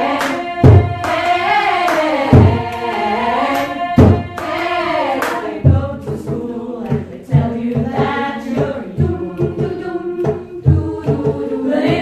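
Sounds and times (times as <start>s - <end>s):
female choir singing: 0.0s - 12.0s
sharp drum hits: 3.9s - 4.8s
low drum beat: 5.5s - 12.0s.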